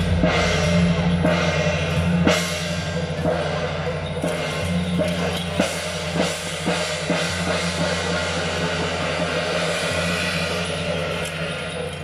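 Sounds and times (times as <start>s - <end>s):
hand cymbals clashing: 0.0s - 12.0s.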